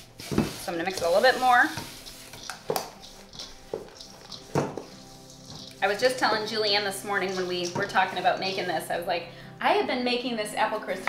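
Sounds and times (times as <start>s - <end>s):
spoon stirring crumble mixture: 0.0s - 9.0s.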